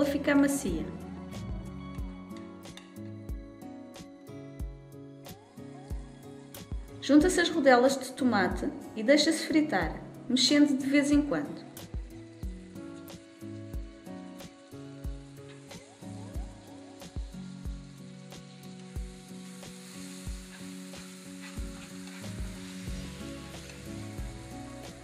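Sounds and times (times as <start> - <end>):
light acoustic background music: 0.0 - 25.0
onions and tomatoes sizzling: 0.0 - 25.0
spatula stirring in pan: 12.2 - 25.0.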